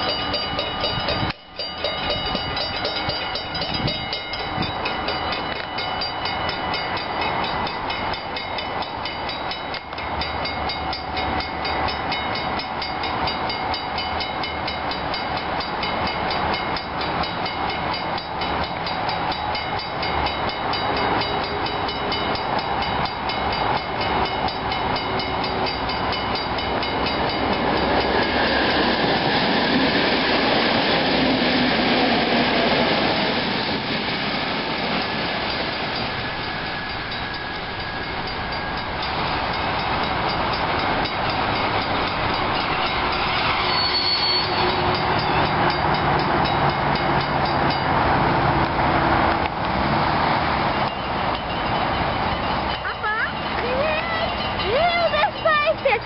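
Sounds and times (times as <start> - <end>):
level-crossing warning bells: 0.0 - 56.0
train rumble: 0.0 - 56.0.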